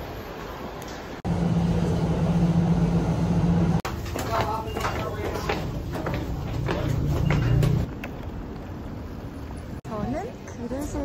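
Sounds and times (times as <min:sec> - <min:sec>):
subway station background noise: 0:00.0 - 0:11.0.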